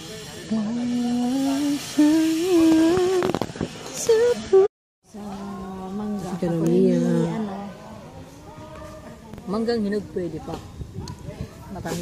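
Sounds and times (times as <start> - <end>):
woman humming: 5.2 - 7.7.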